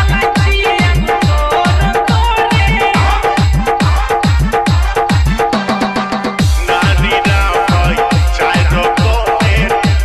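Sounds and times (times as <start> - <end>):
electronic dance music: 0.0 - 10.0
heavy kick drum: 0.0 - 10.0.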